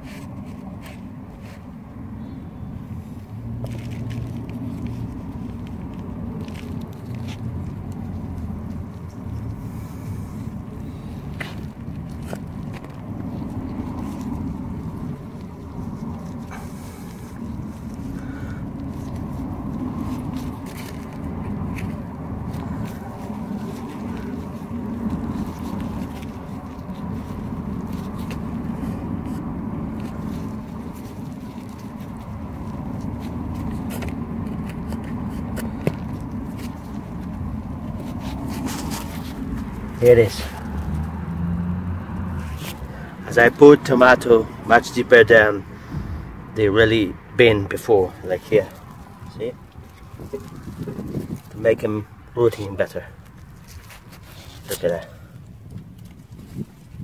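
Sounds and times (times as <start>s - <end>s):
hands scraping soil: 0.0s - 57.0s
low outdoor rumble: 0.0s - 57.0s.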